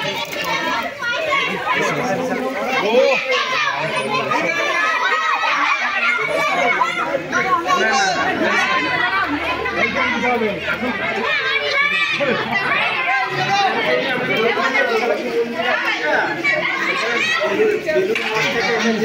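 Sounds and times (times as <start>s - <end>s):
adult voices: 0.0s - 19.0s
children talking and calling out: 0.0s - 19.0s.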